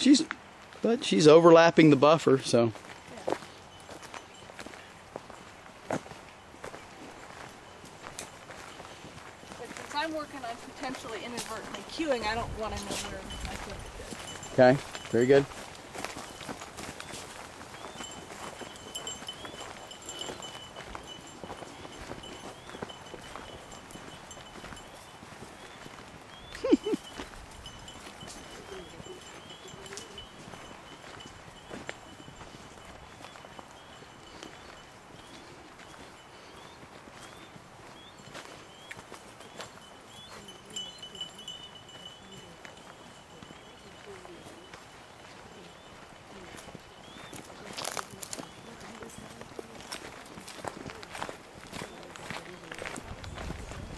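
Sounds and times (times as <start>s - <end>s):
footsteps on stony ground: 2.5s - 53.9s
clear high ringing tone: 12.8s - 26.0s, 26.6s - 36.7s, 37.4s - 48.4s.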